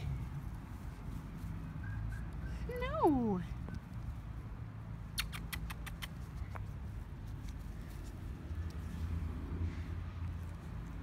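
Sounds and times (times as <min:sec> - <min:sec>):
puppy gnawing clicks: 0:05.1 - 0:06.3.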